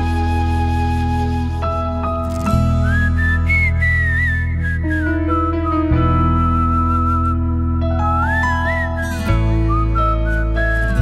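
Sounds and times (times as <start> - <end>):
flute melody: 0.0 - 11.0
low bass and held chords: 0.0 - 11.0.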